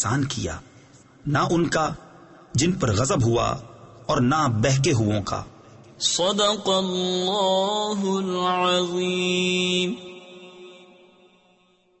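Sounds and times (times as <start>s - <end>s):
echoing chanted vocal note: 6.0s - 12.0s.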